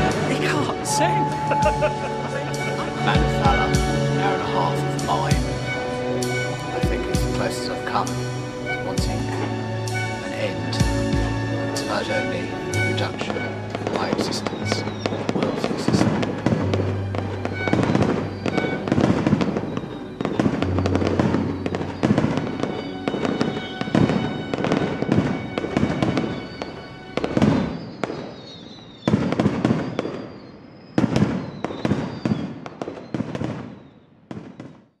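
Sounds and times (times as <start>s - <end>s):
fireworks bangs and crackle: 0.0s - 35.0s.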